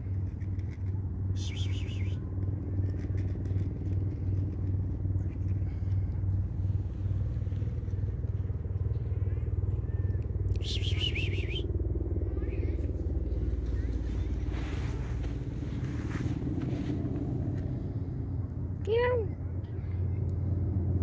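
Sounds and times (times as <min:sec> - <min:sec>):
low rumble with pulsing hum: 0:00.0 - 0:21.0.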